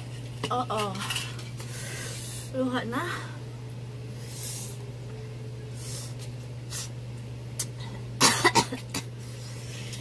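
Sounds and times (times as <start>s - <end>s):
person coughing: 8.2s - 9.1s.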